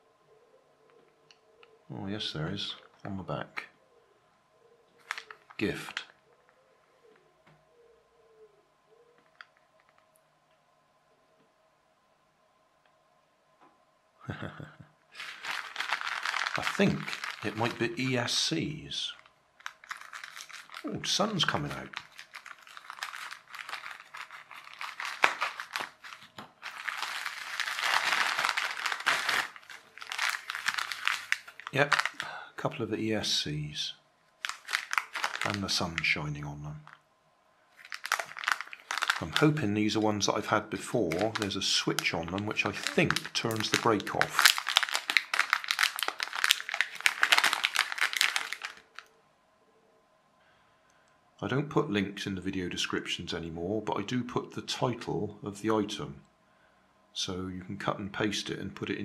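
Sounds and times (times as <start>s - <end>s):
plastic bag crinkling: 5.0s - 5.7s, 15.2s - 32.4s, 34.4s - 36.2s, 37.8s - 49.1s.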